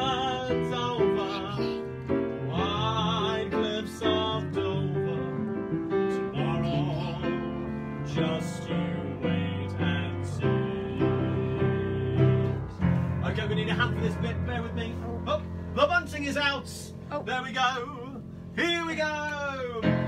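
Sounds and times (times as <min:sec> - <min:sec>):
upright piano chords: 0:00.0 - 0:20.0.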